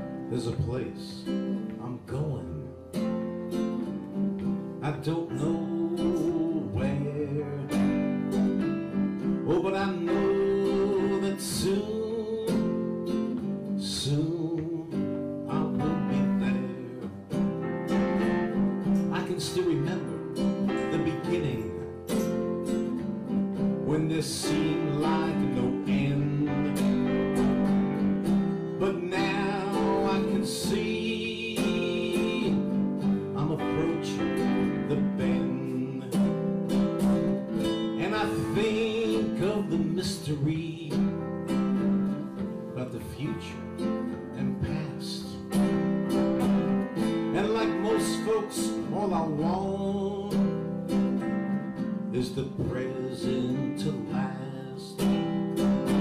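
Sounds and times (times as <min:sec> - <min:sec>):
acoustic guitar strumming: 0:00.0 - 0:56.0
keyboard: 0:00.0 - 0:56.0.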